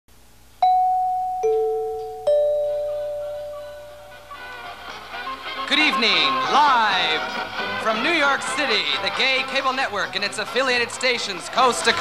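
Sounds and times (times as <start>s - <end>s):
three-note chime: 0.6s - 4.7s.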